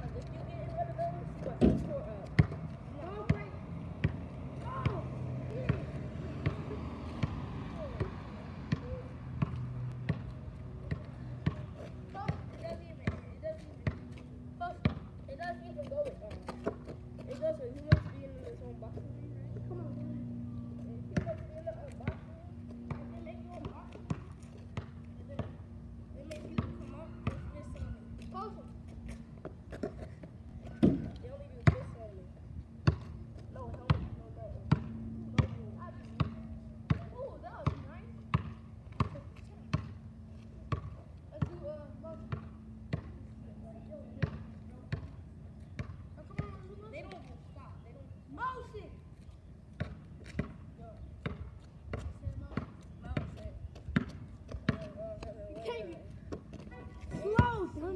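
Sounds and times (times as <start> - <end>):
basketball bouncing on asphalt: 0.0 - 47.9, 49.2 - 57.9.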